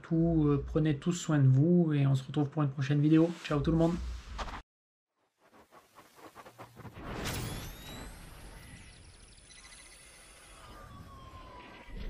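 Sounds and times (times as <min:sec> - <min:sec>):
electronic whoosh: 0:05.4 - 0:11.6.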